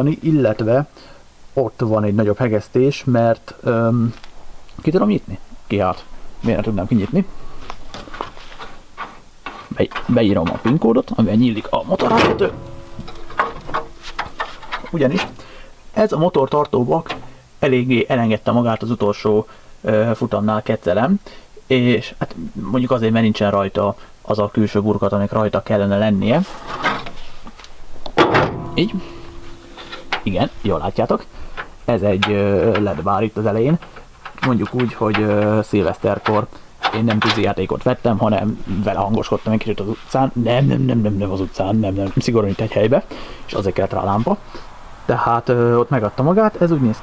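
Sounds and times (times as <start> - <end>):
light clicks and knocks: 7.0 - 15.5, 16.6 - 17.4, 26.8 - 38.5
car bonnet shutting: 9.0 - 15.7, 16.7 - 17.4, 28.1 - 37.6
faint steady tone: 11.1 - 20.0, 27.9 - 35.4.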